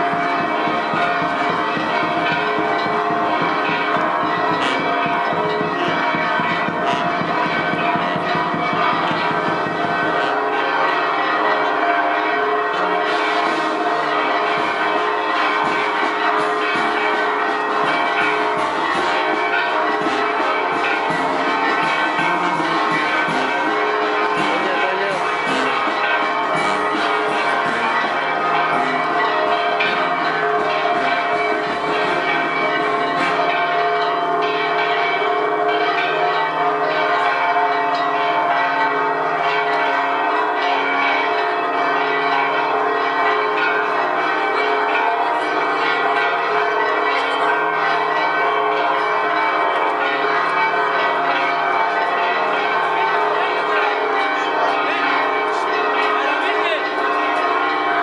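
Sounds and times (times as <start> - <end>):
church bells ringing: 0.0 - 58.0.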